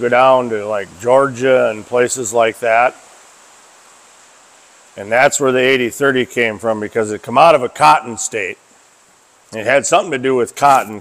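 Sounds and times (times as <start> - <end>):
rain on a metal roof: 0.0 - 11.0.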